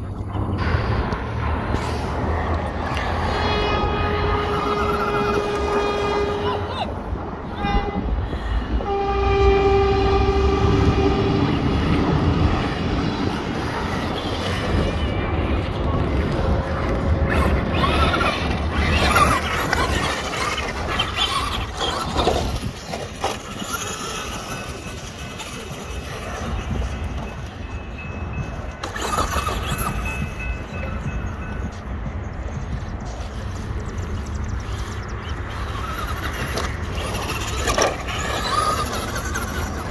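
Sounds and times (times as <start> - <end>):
low rumble: 0.0 - 20.8
electric motor whining: 2.6 - 6.8, 33.3 - 39.9
train horn: 3.2 - 6.7, 7.5 - 12.0
gravel crunching under tyres: 11.3 - 39.9.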